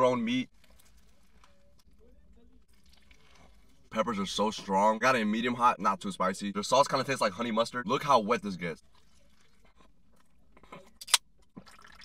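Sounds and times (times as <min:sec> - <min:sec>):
sipping and swallowing: 0:02.7 - 0:03.9, 0:08.8 - 0:12.0.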